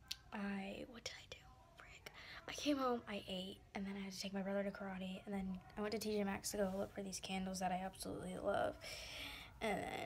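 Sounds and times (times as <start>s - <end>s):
woman speaking softly: 0.0s - 10.0s.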